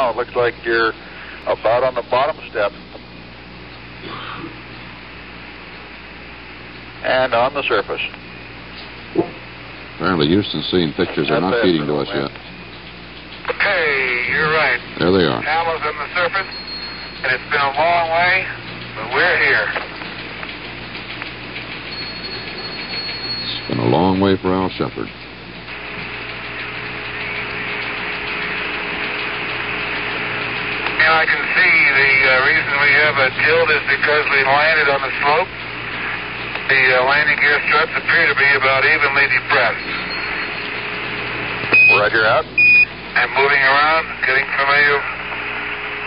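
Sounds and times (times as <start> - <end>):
radio static hiss: 0.0 - 16.6, 17.2 - 20.5, 23.4 - 46.0
faint hum: 0.0 - 46.0.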